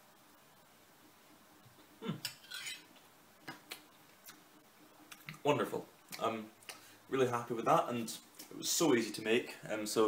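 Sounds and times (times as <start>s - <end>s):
metal spoon scraping a plate: 2.3s - 2.9s.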